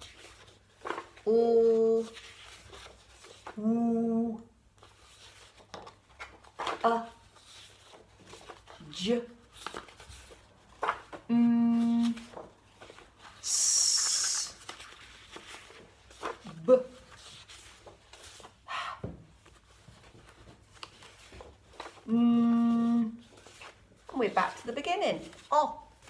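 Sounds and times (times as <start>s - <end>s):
paper cards shuffling: 0.0s - 3.6s, 4.7s - 18.6s, 19.3s - 26.0s
woman voicing letter sounds: 11.3s - 12.3s, 22.1s - 23.2s.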